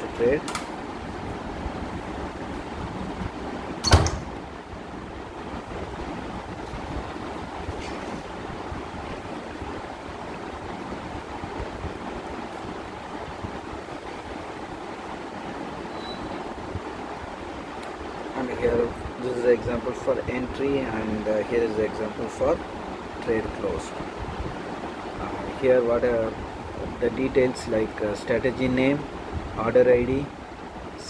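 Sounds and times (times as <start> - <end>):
steady background noise: 0.0 - 31.0.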